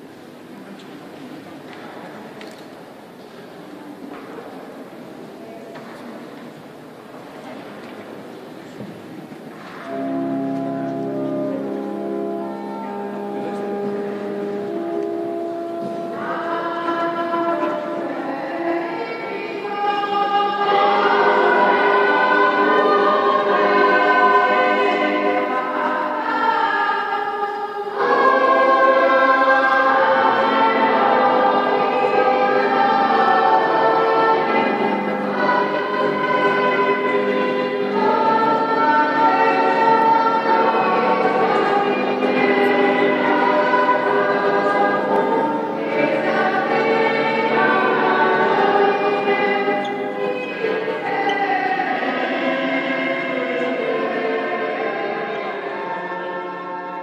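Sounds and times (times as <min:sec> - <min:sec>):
choir singing a hymn: 0:09.7 - 0:57.0.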